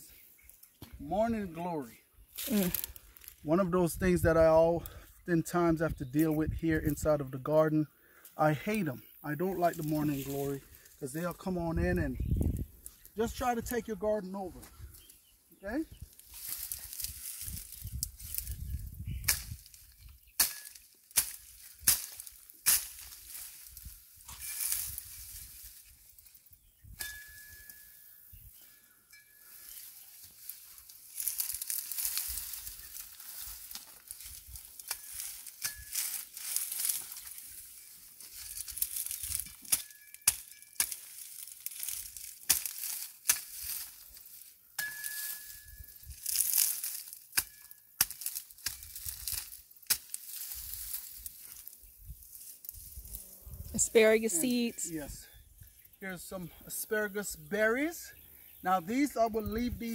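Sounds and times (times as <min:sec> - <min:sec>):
dry plants rustling and crackling: 0:00.0 - 0:59.9
brittle stalks snapping: 0:02.4 - 0:03.4, 0:16.2 - 0:18.6, 0:19.2 - 0:25.4, 0:30.4 - 0:37.6, 0:38.2 - 0:51.8.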